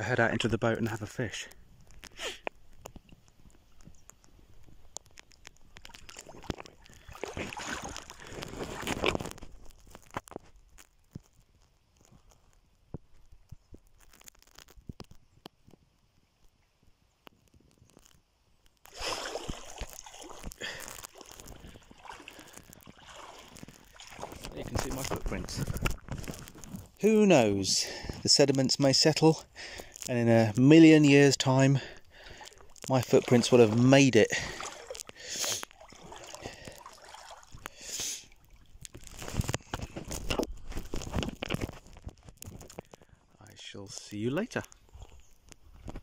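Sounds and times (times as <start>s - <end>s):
water sloshing around wading legs: 1.9s - 10.4s, 18.9s - 27.0s, 31.6s - 43.0s.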